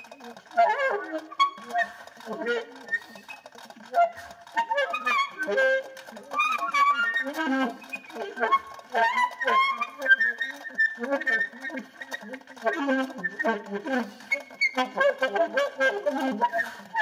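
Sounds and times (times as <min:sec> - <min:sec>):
alto saxophone improvising: 0:00.0 - 0:17.0.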